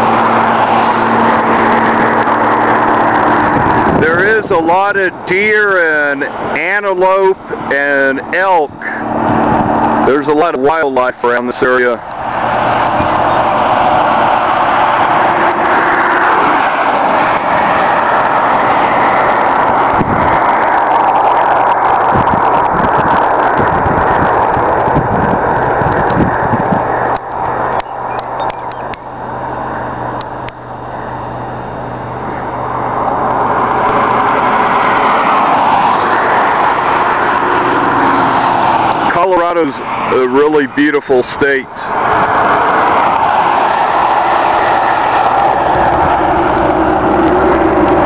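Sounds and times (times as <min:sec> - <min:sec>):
low engine drone: 0:00.0 - 0:48.0
road and wind noise in a car: 0:00.0 - 0:48.0.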